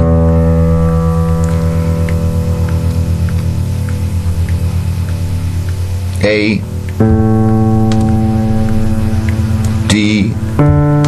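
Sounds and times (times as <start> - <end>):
low piano note: 0.0 - 11.0.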